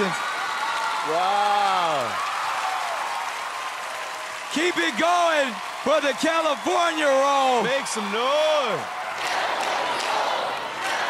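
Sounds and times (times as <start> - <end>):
audience clapping and cheering: 0.0 - 11.0.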